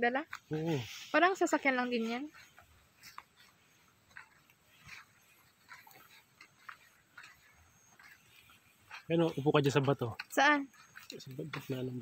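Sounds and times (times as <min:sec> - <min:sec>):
faint crunching footsteps: 0:00.0 - 0:12.0.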